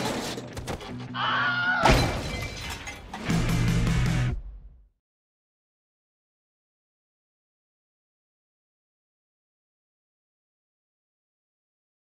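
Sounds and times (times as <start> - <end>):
debris shattering and clattering: 0.0 - 1.0, 1.8 - 3.6.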